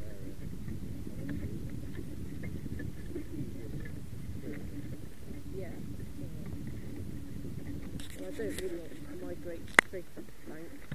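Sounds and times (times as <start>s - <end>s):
faint scattered clicks: 0.0s - 10.9s.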